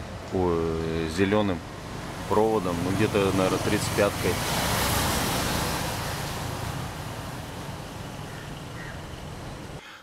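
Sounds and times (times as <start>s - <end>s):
motor vehicle passing: 0.8s - 9.8s.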